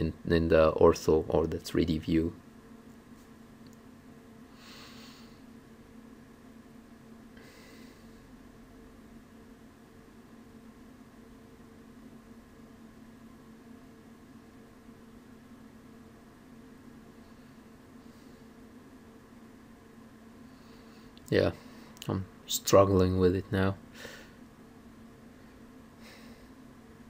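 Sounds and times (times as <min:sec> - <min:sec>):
steady low hum: 0:00.0 - 0:27.0.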